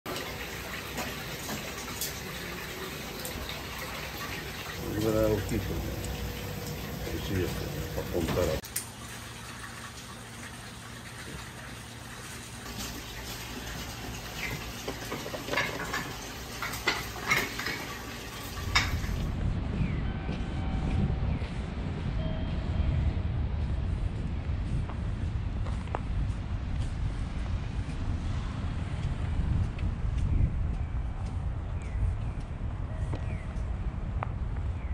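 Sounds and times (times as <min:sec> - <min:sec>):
crab legs sizzling on a grill: 0:00.1 - 0:10.2, 0:12.1 - 0:19.3
low rumble outdoors: 0:00.1 - 0:34.9.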